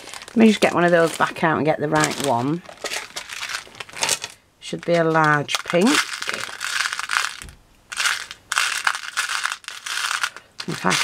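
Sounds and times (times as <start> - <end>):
beads clicking in plastic box: 5.1 - 11.0.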